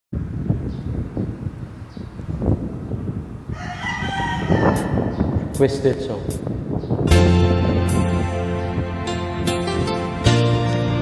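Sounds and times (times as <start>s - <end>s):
low rumbling: 0.2s - 11.0s
karaoke backing track: 7.0s - 11.0s.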